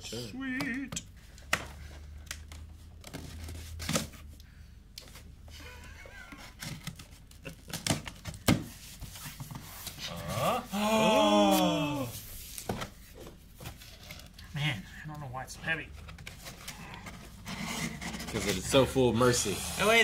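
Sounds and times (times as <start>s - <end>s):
cardboard rustling: 15.9s - 19.1s.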